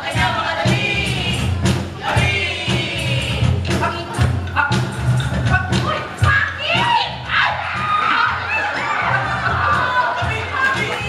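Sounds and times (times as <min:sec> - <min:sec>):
voices shouting high cries: 0:06.3 - 0:11.0.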